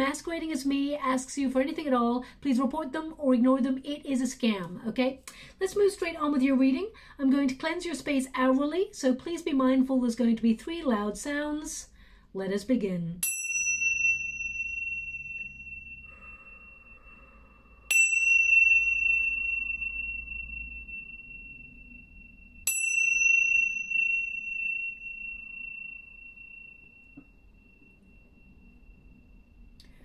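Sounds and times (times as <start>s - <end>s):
tingsha cymbals ringing: 13.2s - 30.0s.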